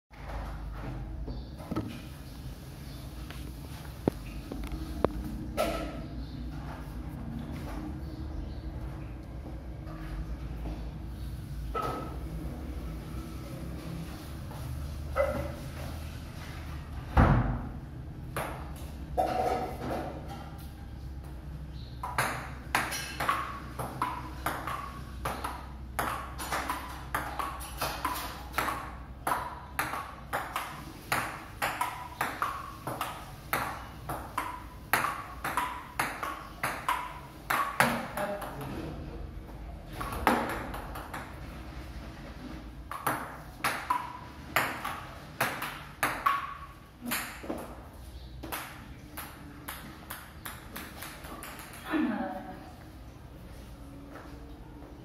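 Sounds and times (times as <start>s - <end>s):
ping pong ball clicking off paddles: 18.3s - 18.9s, 22.0s - 38.7s, 39.9s - 41.5s, 42.8s - 47.8s, 48.4s - 51.8s
ball bouncing on wooden table: 22.0s - 38.6s.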